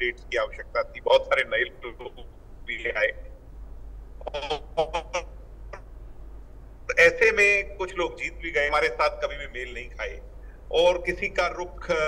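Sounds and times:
man's voice over video call: 0.0s - 3.3s, 4.2s - 5.3s, 6.9s - 12.0s.

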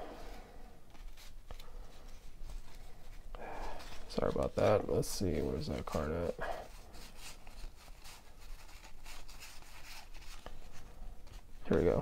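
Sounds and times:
cards rustling and sliding: 0.1s - 12.0s.

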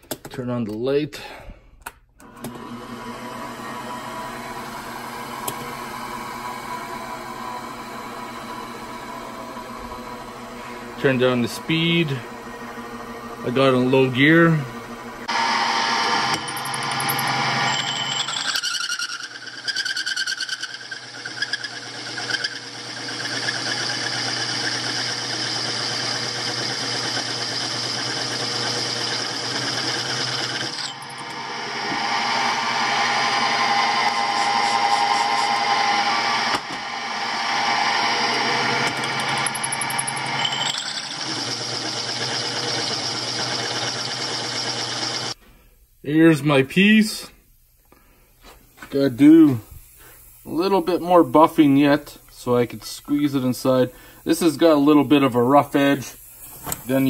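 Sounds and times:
milling machine motor hum: 2.2s - 18.5s, 20.6s - 45.4s
hole saw grinding through steel: 15.3s - 45.4s.

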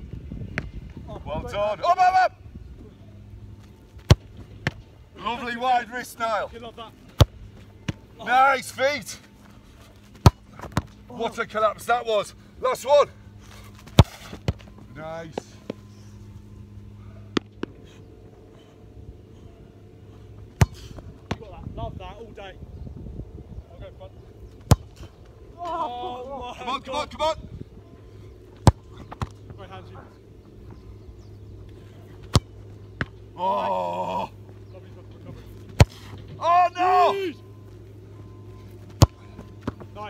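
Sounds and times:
football thuds: 10.1s - 11.0s, 20.5s - 21.6s, 24.6s - 25.1s, 38.9s - 40.0s
football kicked hard thud: 20.6s - 21.5s, 24.6s - 25.0s.

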